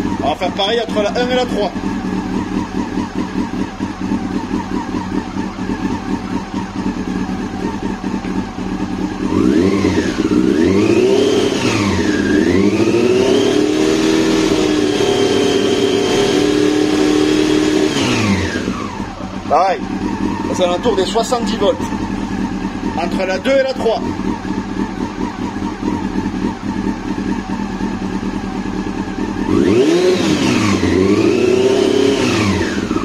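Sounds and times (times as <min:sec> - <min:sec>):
motorcycle engine idling and revving: 0:00.0 - 0:33.0.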